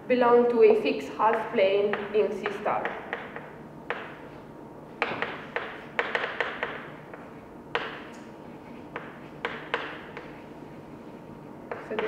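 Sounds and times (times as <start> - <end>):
chalk tapping on blackboard: 1.3 - 4.2, 5.0 - 10.8, 11.7 - 12.0
chalk scratching: 8.3 - 12.0.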